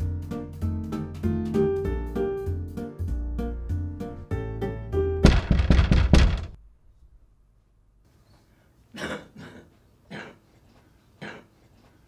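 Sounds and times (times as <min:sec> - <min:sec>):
knocking on a door: 0:05.2 - 0:06.6.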